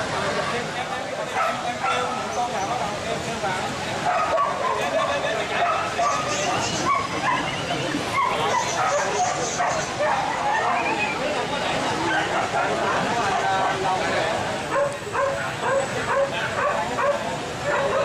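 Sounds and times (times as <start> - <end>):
crowd chatter: 0.0 - 18.0
dogs barking: 1.2 - 2.5, 4.0 - 11.0, 12.0 - 13.9, 14.7 - 18.0.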